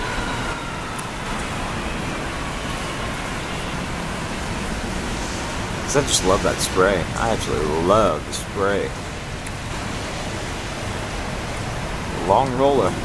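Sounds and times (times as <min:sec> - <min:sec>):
jet engines at takeoff: 0:00.0 - 0:13.0.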